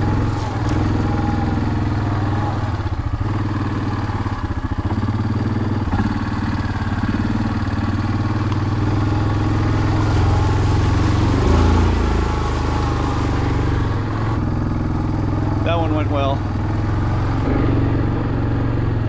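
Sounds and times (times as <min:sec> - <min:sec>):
atv engine running: 0:00.0 - 0:19.0.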